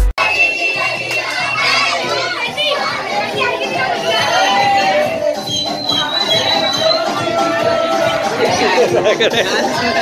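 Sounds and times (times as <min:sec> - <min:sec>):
music: 0:00.0 - 0:10.0
boys shouting and yelling: 0:00.2 - 0:10.0.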